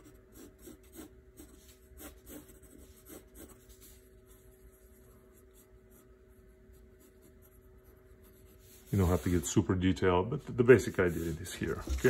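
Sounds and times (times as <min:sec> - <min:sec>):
low steady hum: 0:00.0 - 0:12.0
pencil sketching on paper: 0:00.0 - 0:12.0.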